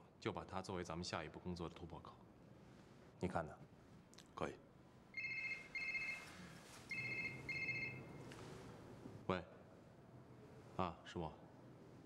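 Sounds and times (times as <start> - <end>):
mobile phone ringing: 5.2 - 8.2.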